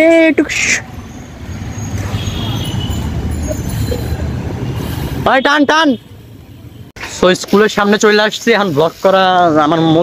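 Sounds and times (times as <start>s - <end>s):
faint street traffic: 0.0s - 10.0s.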